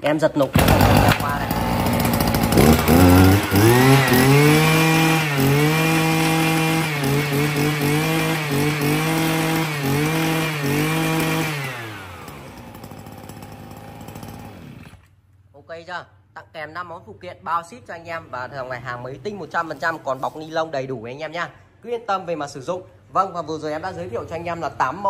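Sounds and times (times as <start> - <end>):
brush cutter engine revving: 0.5 - 15.1
engine pull-start: 0.5 - 15.1.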